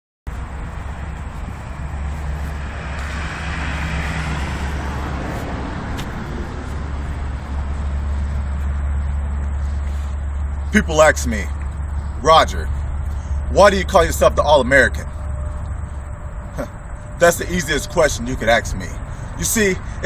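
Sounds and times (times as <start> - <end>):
outdoor rumble and hiss: 0.3 - 20.0.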